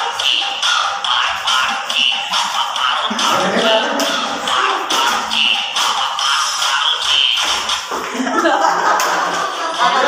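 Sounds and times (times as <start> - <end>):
upbeat dance music: 0.0 - 10.0
feet shuffling and tapping on floor: 7.0 - 9.6.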